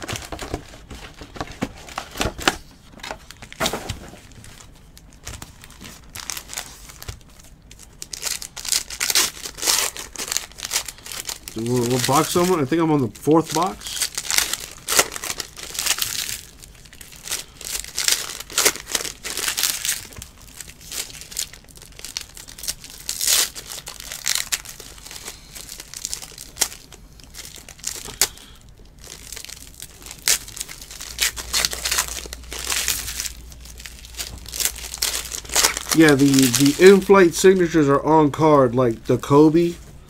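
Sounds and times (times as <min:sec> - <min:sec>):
foil wrappers crinkling: 0:00.0 - 0:38.4.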